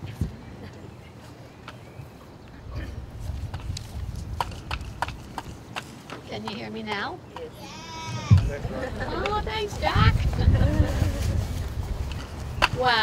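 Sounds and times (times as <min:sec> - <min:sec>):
wind rumbling on microphone: 0:01.9 - 0:06.0, 0:07.9 - 0:13.0.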